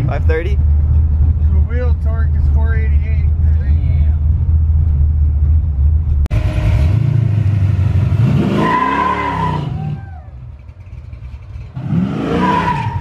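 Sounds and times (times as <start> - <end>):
sports car engine revving: 6.3 - 9.9.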